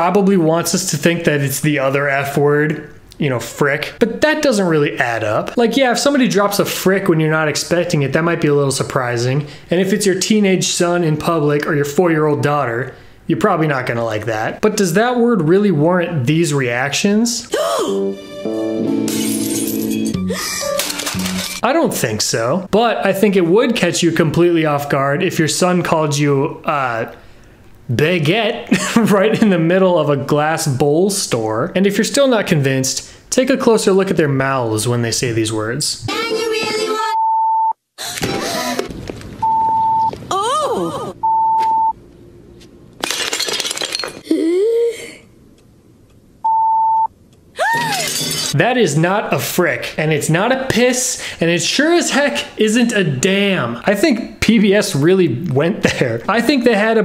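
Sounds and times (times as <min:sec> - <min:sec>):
held music chord: 0:17.9 - 0:19.2
glass shattering on tiled floor: 0:19.1 - 0:20.1, 0:43.0 - 0:44.3, 0:47.8 - 0:48.6
cartoon character voices: 0:36.0 - 0:37.2
censor bleep: 0:37.1 - 0:37.8, 0:39.4 - 0:40.2, 0:41.2 - 0:42.0, 0:46.4 - 0:47.1.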